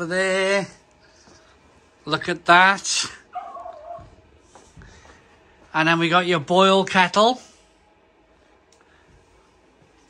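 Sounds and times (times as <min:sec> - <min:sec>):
small dog whining: 0:03.3 - 0:04.2.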